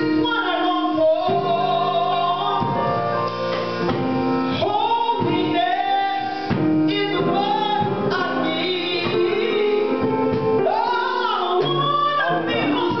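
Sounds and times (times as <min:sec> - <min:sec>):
woman singing into microphone: 0:00.0 - 0:03.2, 0:04.5 - 0:13.0
instrumental backing: 0:00.0 - 0:13.0.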